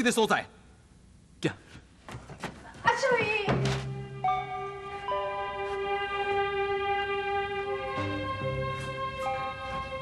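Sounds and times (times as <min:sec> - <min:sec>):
background music with held notes: 0:03.6 - 0:10.0.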